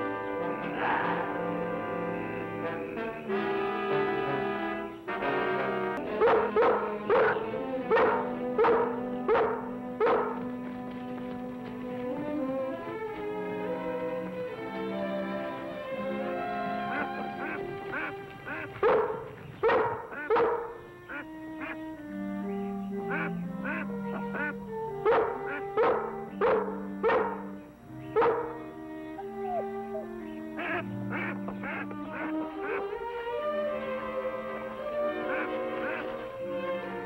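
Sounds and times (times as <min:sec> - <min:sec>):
orchestral strings: 0:00.0 - 0:19.6, 0:20.8 - 0:37.0
short animal calls: 0:29.2 - 0:32.8.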